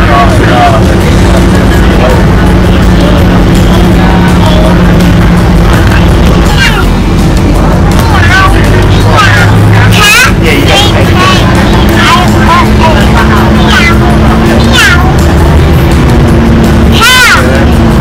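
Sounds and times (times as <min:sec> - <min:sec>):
bus engine hum: 0:00.0 - 0:18.0.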